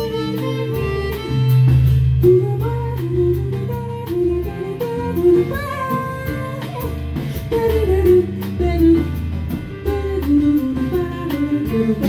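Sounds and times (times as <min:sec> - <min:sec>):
drum kit: 0:00.0 - 0:12.0
piano: 0:00.0 - 0:12.0
sustained bass: 0:00.0 - 0:12.0
woman singing: 0:02.2 - 0:12.0.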